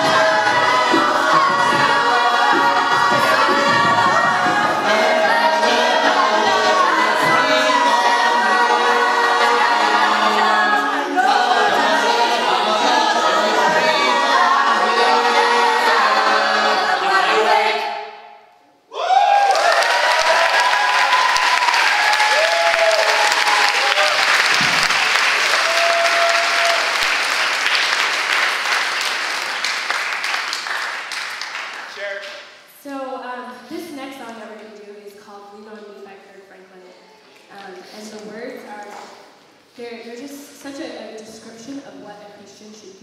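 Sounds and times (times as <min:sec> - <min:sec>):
vocal group singing in harmony: 0:00.0 - 0:18.4
audience applause: 0:19.3 - 0:32.2.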